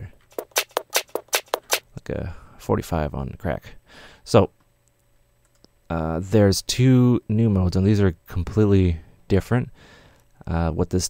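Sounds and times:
sped-up drum loop: 0:00.3 - 0:01.8.

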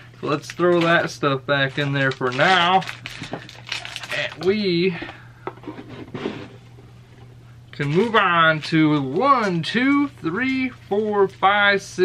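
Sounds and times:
cardboard lid sliding: 0:05.6 - 0:06.6.

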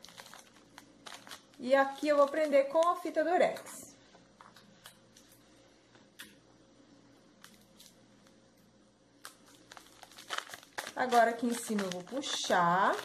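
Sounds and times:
foil wrapper crinkling: 0:00.0 - 0:03.2, 0:09.2 - 0:13.0.

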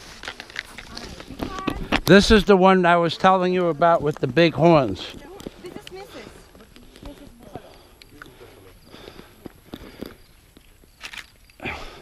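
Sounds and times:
distant voices: 0:00.0 - 0:12.0.

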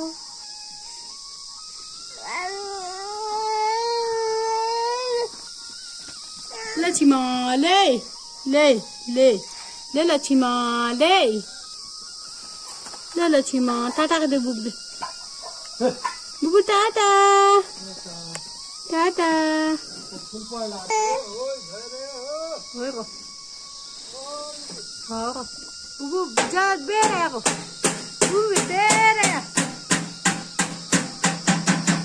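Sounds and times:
crickets chirring: 0:00.0 - 0:32.0
insects droning: 0:00.0 - 0:32.0
woman talking: 0:06.8 - 0:11.5, 0:13.1 - 0:14.8, 0:16.4 - 0:17.7, 0:18.9 - 0:19.8, 0:25.1 - 0:27.5, 0:28.3 - 0:29.5.

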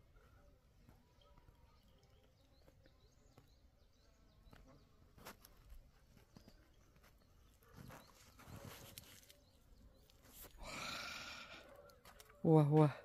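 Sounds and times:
faint footsteps: 0:00.0 - 0:10.6.

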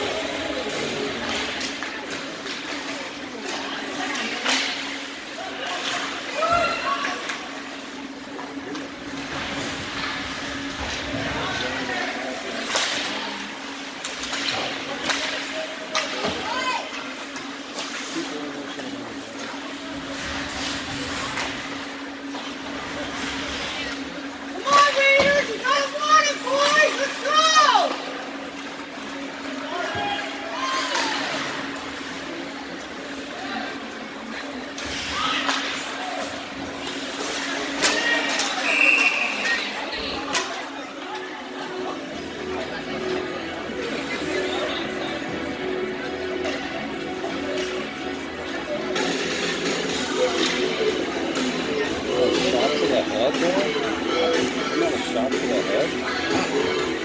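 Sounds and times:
hockey sticks clacking on puck: 0:12.6 - 0:13.2, 0:13.8 - 0:16.4.

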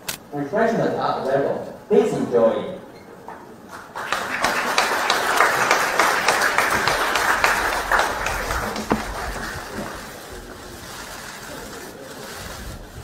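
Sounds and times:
audience applauding: 0:03.7 - 0:10.3.

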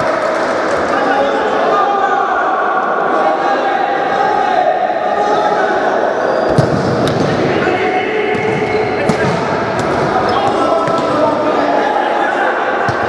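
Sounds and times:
chatter and shouts of people: 0:00.0 - 0:13.0.

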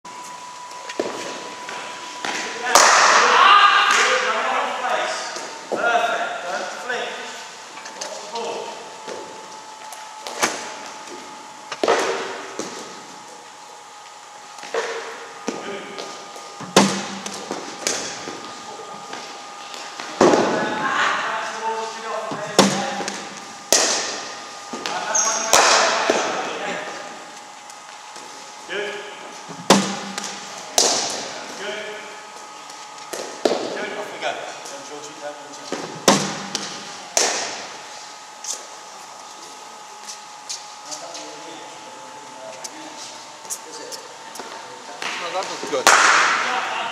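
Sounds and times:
cricket ball striking bat: 0:16.6 - 0:18.4, 0:22.6 - 0:24.3, 0:29.6 - 0:31.3, 0:35.8 - 0:37.7.

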